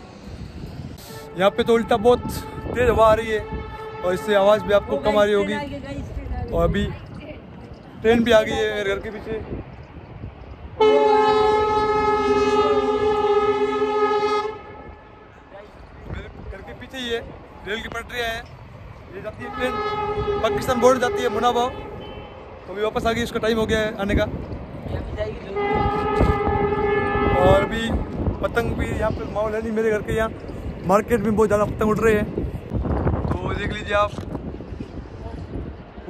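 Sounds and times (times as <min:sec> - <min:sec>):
wind buffeting microphone: 0:00.0 - 0:36.0
train horn blast: 0:01.0 - 0:05.6, 0:10.8 - 0:15.4, 0:19.3 - 0:22.5, 0:25.4 - 0:28.3.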